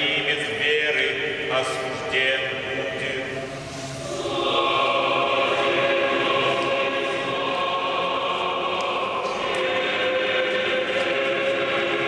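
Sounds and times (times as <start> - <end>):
choir holding sustained chord: 0.0 - 12.0.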